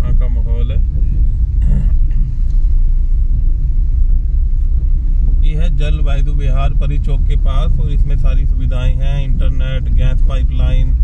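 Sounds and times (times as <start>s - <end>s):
low fluttering rumble: 0.0s - 11.0s.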